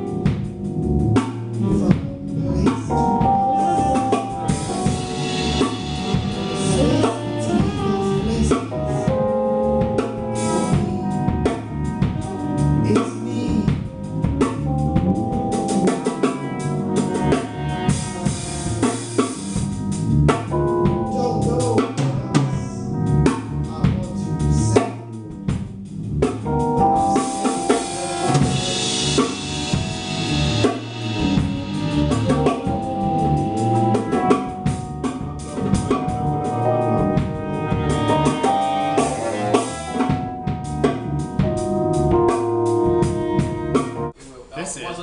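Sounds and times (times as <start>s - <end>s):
bass drum and snare hits: 0.0s - 12.4s, 17.3s - 24.2s, 24.8s - 43.9s
small jazz group playing: 0.0s - 44.5s
cymbals wash: 27.2s - 32.4s.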